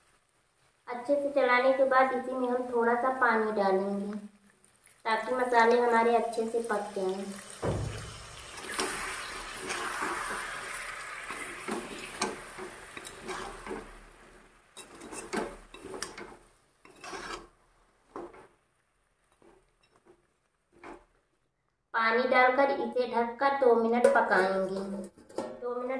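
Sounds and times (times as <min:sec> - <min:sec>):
water sizzling in hot pan: 0:00.0 - 0:21.2
metal spoon scraping metal pan: 0:08.6 - 0:14.0, 0:14.8 - 0:17.5.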